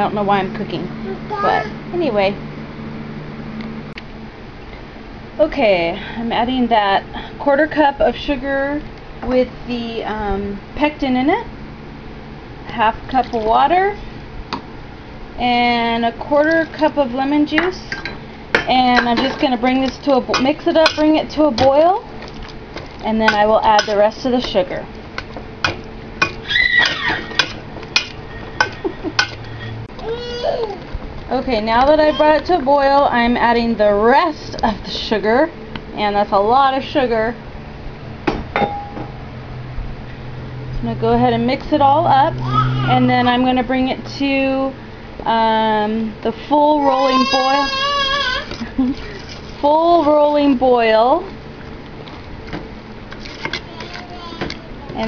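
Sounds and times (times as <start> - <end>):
metal spoon clinking on pot: 23.3 - 24.0
spoon scraping thick mixture: 48.4 - 49.7, 53.1 - 54.0.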